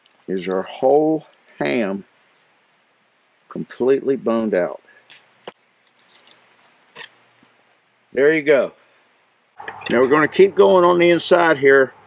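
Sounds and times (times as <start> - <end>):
wet squishing of meat: 5.8 - 7.6.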